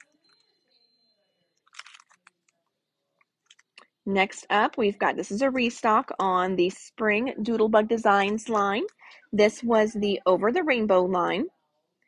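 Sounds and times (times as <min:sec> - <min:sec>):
cellophane packet crinkling: 0:01.6 - 0:02.5.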